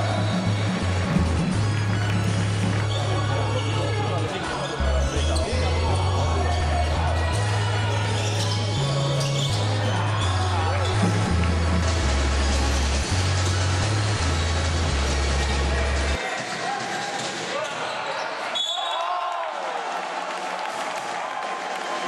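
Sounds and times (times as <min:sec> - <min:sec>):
music with heavy bass: 0:00.0 - 0:16.2
crowd voices: 0:00.0 - 0:22.0.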